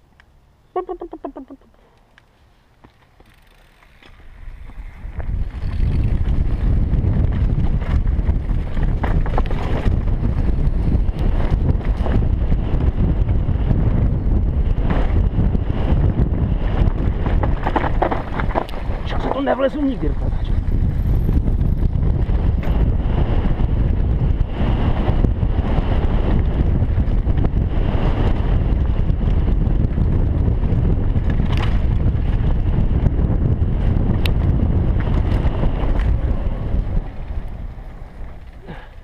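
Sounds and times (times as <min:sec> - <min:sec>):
bike clicks and rattles: 0:01.7 - 0:39.0
bike tyres on dirt trail: 0:01.8 - 0:39.0
wind rushing over microphone: 0:04.2 - 0:39.0.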